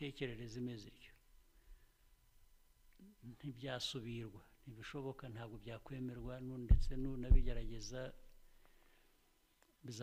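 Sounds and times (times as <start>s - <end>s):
man speaking: 0.0s - 1.2s, 3.0s - 8.3s
short low thump: 6.7s - 7.7s.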